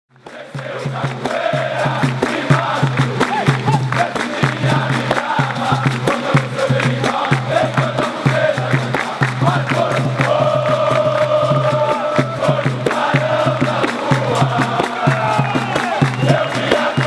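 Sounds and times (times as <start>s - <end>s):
rhythmic clapping: 0.1s - 17.0s
crowd singing in chorus: 0.2s - 17.0s.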